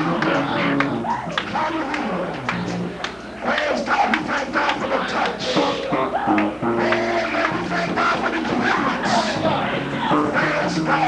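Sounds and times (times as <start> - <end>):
bass line: 0.0 - 3.0, 5.6 - 11.0
guitar: 0.0 - 11.0
voices singing: 0.0 - 11.0.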